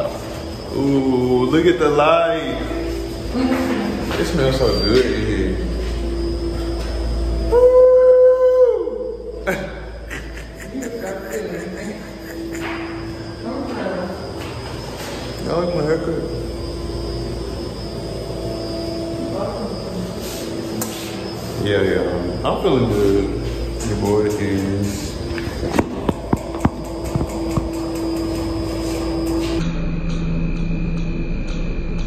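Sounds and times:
long held vocal note: 5.5s - 10.0s
people's voices: 7.5s - 14.5s.

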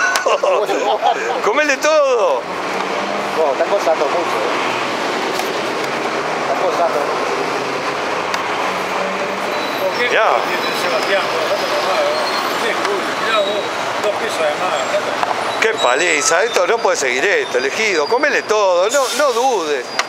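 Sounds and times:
street traffic passing: 0.0s - 20.0s
scattered voices: 5.4s - 19.9s.

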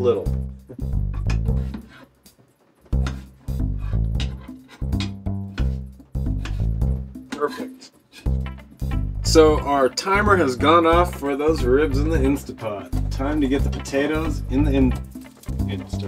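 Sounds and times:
plucked bass and guitar music: 0.0s - 1.9s, 2.9s - 7.3s, 8.3s - 16.0s.

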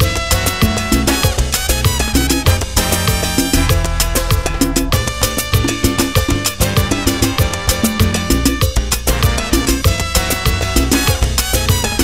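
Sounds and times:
salsa music: 0.0s - 12.0s.

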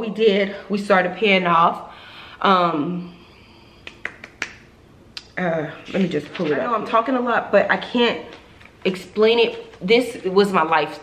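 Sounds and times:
person speaking: 5.2s - 11.0s.

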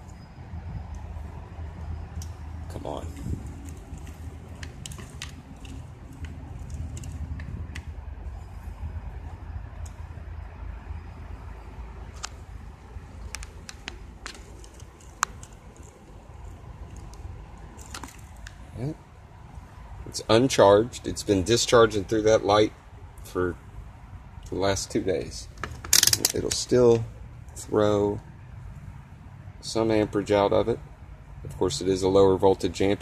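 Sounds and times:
steady low rumble: 0.6s - 20.3s
test probes and wires clicking: 13.2s - 16.0s, 25.6s - 27.0s.

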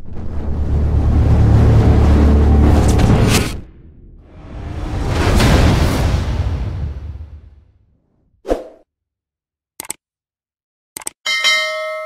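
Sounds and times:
bell ding: 11.3s - 12.0s.

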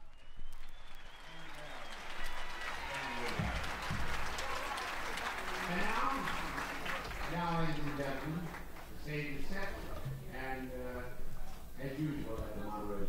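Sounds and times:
audience applauding: 0.0s - 9.8s
man talking: 5.6s - 13.0s.

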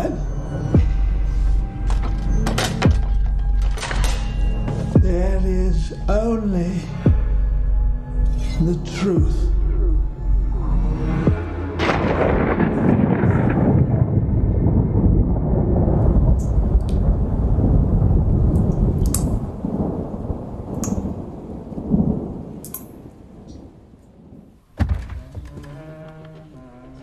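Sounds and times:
deep dense rumble: 0.0s - 22.3s
sudden hit: 11.3s - 15.5s
sharp clicks: 22.6s - 22.9s.

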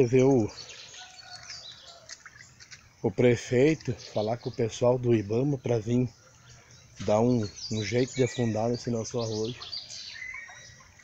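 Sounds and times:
low outdoor background: 0.0s - 11.0s
bird chirps: 0.2s - 2.8s, 3.8s - 11.0s.

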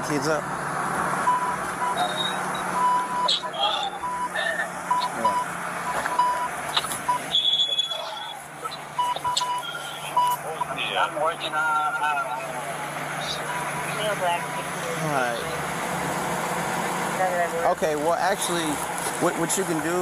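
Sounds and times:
censor beep tone: 1.3s - 6.5s, 7.1s - 8.4s, 9.0s - 10.4s
faint phone-call speech: 7.7s - 15.6s.

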